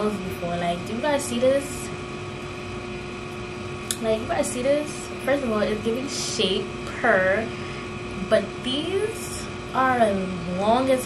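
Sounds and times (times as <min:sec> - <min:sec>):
electric fan whooshing: 0:00.0 - 0:11.0
faint steady hum: 0:00.0 - 0:11.0.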